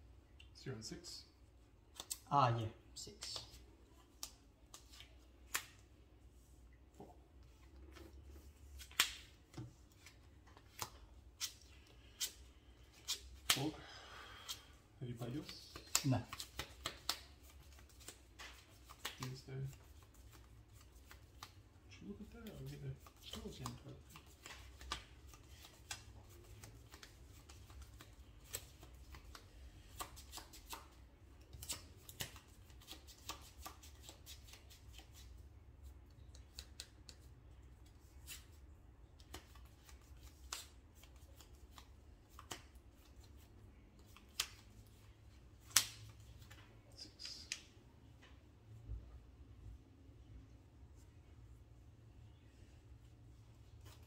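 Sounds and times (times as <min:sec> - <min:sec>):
cards shuffling clicks: 0:08.7 - 0:13.6.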